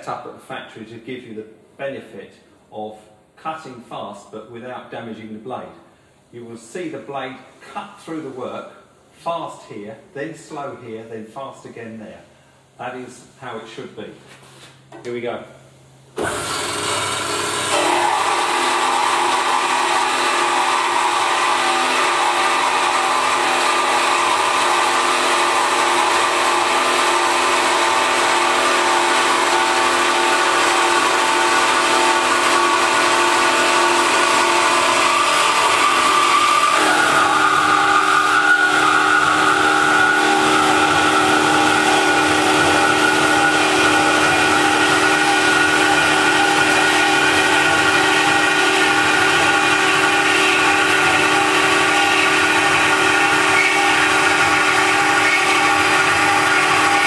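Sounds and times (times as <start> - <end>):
bandsaw cutting metal whine: 16.2 - 57.0.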